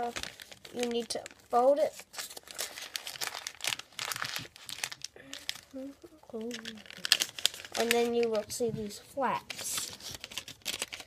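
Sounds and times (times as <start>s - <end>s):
paper rustling and folding: 0.0s - 11.0s.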